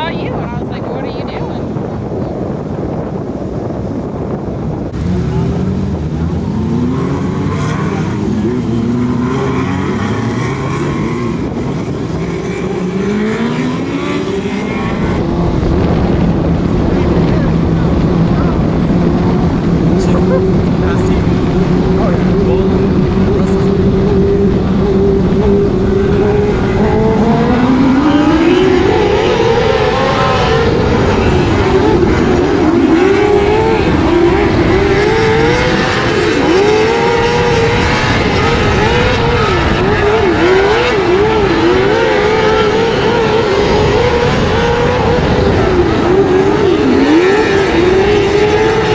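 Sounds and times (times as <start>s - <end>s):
race car engine revving: 4.2s - 48.9s.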